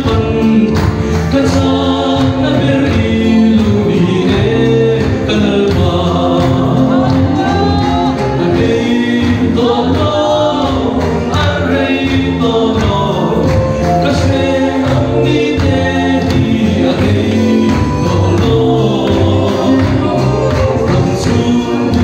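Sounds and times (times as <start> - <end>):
choir singing gospel: 0.0 - 22.0.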